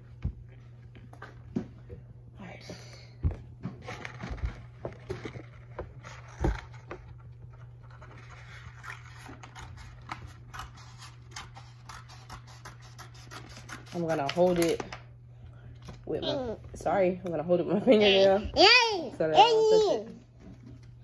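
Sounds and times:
paper scratching: 7.9s - 14.4s
scissors snipping paper: 8.7s - 14.9s.

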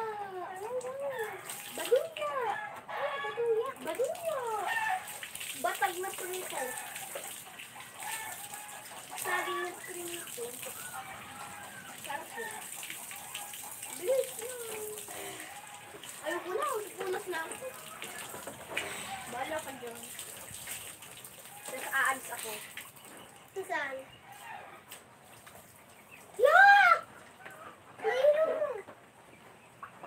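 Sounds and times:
people talking: 0.0s - 4.8s, 5.6s - 6.8s, 9.1s - 11.0s, 11.8s - 12.7s, 13.9s - 15.4s, 16.2s - 17.9s, 19.0s - 20.1s, 21.7s - 22.7s, 28.0s - 28.9s.

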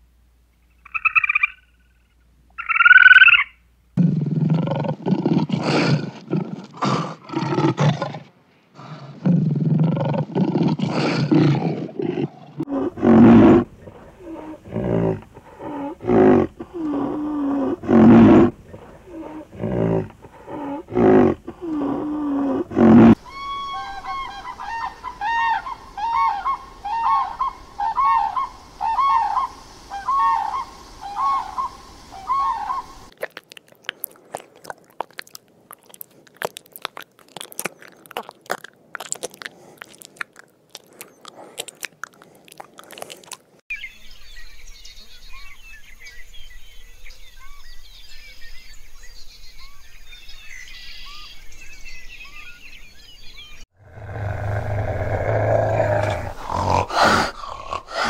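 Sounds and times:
high repeated animal calls: 0.7s - 3.6s, 8.8s - 43.4s, 53.8s - 58.0s
animal growling roars: 4.0s - 23.2s, 53.8s - 58.0s
deep animal grunts: 4.0s - 23.2s, 53.8s - 58.0s.

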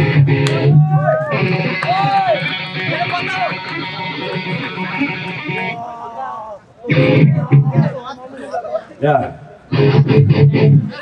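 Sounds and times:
distorted electric guitar: 0.0s - 5.8s, 6.9s - 8.0s, 9.7s - 11.0s
man speaking over pa: 2.9s - 4.1s.

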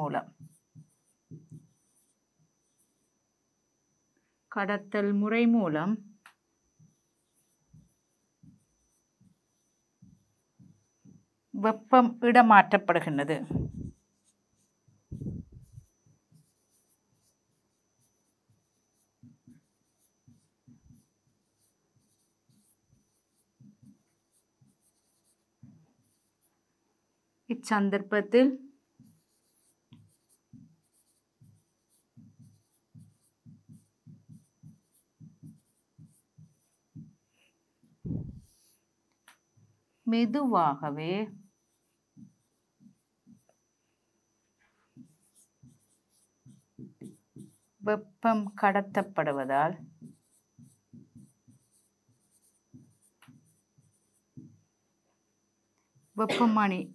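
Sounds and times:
woman speaking: 0.0s - 0.2s, 4.6s - 6.0s, 11.6s - 13.8s, 27.5s - 28.7s, 40.1s - 41.3s, 47.8s - 49.8s, 56.2s - 56.9s
pen scratching on a board: 0.2s - 3.1s, 13.4s - 26.5s, 29.0s - 38.8s, 41.4s - 43.6s, 45.0s - 47.8s, 49.3s - 54.6s.

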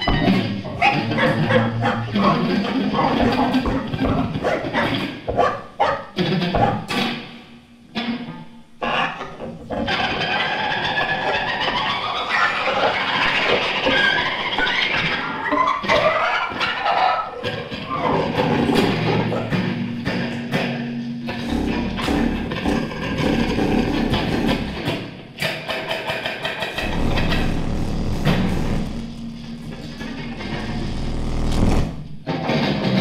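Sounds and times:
dense noise texture: 26.8s - 32.3s.

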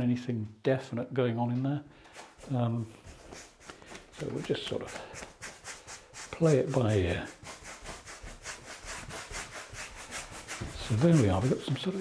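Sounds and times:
brush scrubbing paint on wood: 2.4s - 12.0s.

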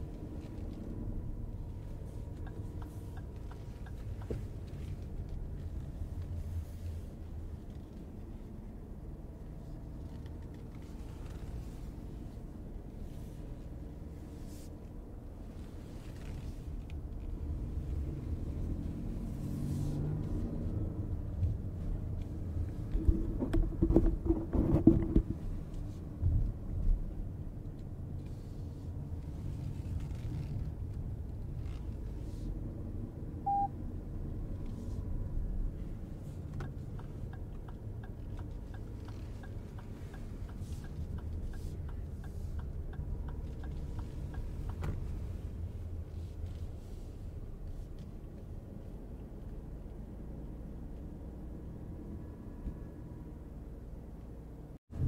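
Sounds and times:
road and tyre noise in car cabin: 0.0s - 55.0s
turn signal ticking: 2.2s - 5.6s, 33.5s - 33.7s, 36.1s - 46.1s
short beep: 33.4s - 33.7s.

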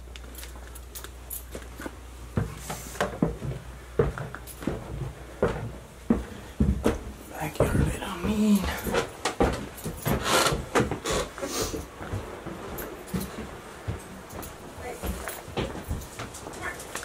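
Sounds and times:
footsteps on wooden stairs: 1.9s - 17.0s.

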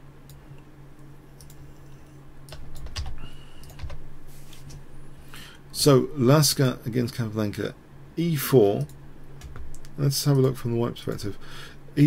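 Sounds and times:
low steady hum: 0.0s - 12.0s
computer keyboard clicks: 2.5s - 4.0s, 8.8s - 10.6s.

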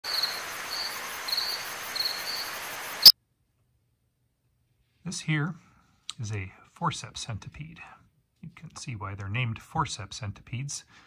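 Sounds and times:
insect chirping: 0.0s - 3.1s
steady hiss: 0.0s - 3.1s.

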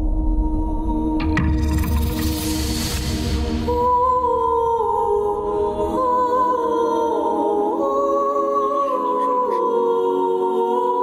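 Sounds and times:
wordless hummed melody: 3.4s - 11.0s.

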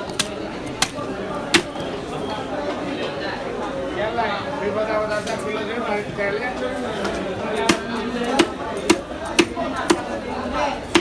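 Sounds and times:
knife chopping into wooden block: 7.7s - 10.1s.

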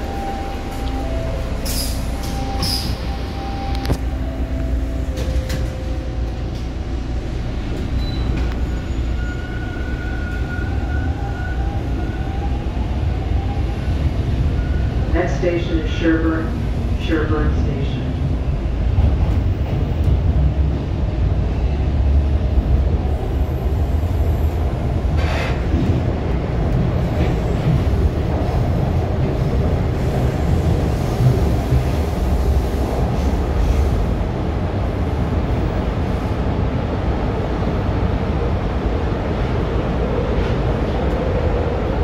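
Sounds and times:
subway car rattle: 0.0s - 42.0s
subway wheels rumbling on rail: 0.0s - 42.0s.

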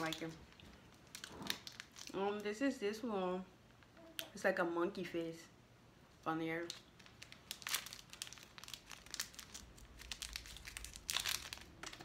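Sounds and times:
snack wrapper crinkling: 0.0s - 2.2s, 6.6s - 12.0s.

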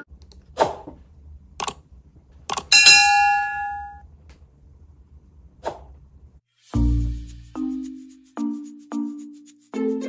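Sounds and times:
notification bell ding: 2.7s - 4.0s.

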